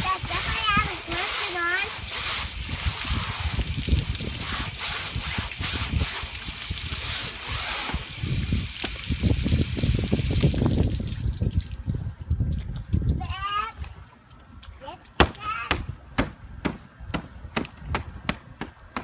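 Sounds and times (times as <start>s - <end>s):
water spraying onto screen mesh: 0.0s - 11.8s.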